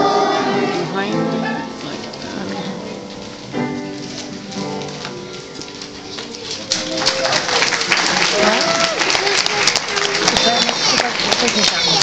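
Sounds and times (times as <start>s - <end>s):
children's choir singing: 0.0s - 2.8s
children's voices calling: 0.0s - 3.1s, 4.2s - 7.5s, 8.1s - 12.0s
musical accompaniment: 0.0s - 12.0s
audience applause: 5.0s - 12.0s.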